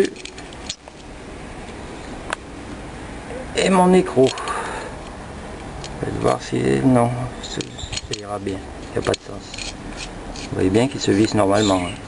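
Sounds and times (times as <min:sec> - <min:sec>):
small metallic clicks of washers: 0:04.2 - 0:06.4, 0:07.5 - 0:10.6.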